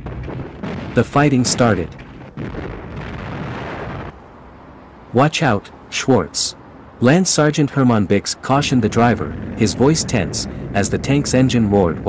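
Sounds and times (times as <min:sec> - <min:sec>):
rumbling explosion blast: 0:00.0 - 0:04.2, 0:08.6 - 0:12.0
low rumble: 0:08.6 - 0:12.0.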